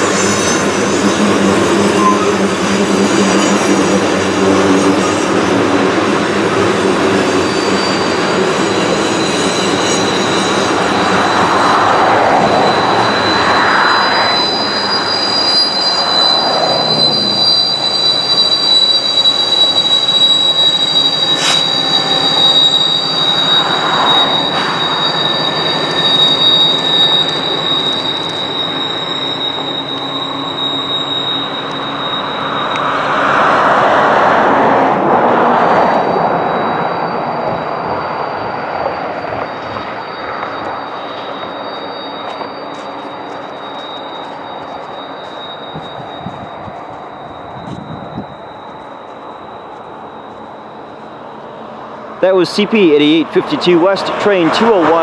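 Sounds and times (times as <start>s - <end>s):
diesel locomotive engine drone: 0.0s - 55.0s
wheel flanges squealing: 0.0s - 55.0s.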